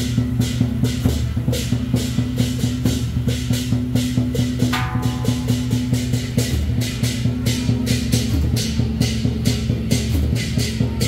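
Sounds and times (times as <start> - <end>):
cymbals crashing: 0.0 - 11.0
drums beating: 0.0 - 11.0
steady low drone: 4.8 - 7.8.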